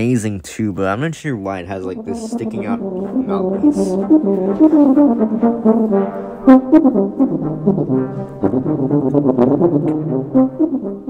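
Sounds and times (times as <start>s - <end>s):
solo tuba: 1.6s - 11.0s.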